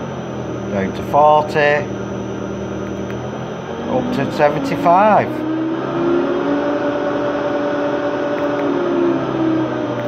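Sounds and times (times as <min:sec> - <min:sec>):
lathe motor humming: 0:00.0 - 0:10.0.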